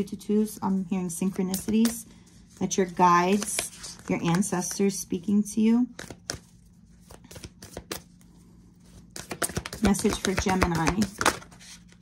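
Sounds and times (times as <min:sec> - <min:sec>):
cards clicking and rustling: 0:03.2 - 0:04.8, 0:06.0 - 0:08.1, 0:08.9 - 0:12.0.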